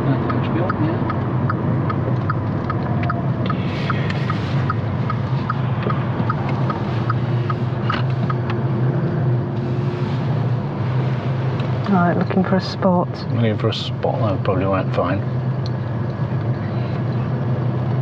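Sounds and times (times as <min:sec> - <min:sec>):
car engine and road noise: 0:00.0 - 0:18.0
turn indicator ticking: 0:00.1 - 0:08.6.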